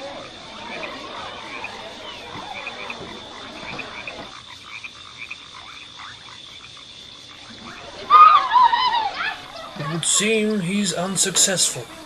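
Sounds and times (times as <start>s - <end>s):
animal chirps: 7.5s - 9.9s.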